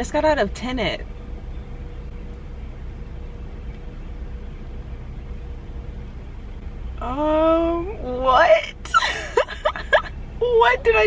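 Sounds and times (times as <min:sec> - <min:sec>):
car engine idling: 0:00.0 - 0:11.0
faint steady hum: 0:00.0 - 0:11.0.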